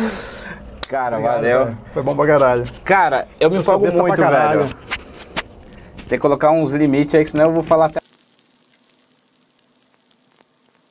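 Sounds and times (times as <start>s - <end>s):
faint steady hiss: 5.6s - 10.9s.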